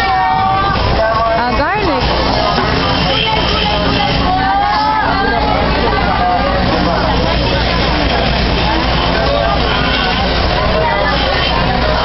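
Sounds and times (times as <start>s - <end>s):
many overlapping voices: 0.0s - 12.0s
traffic engine rumble: 0.0s - 12.0s.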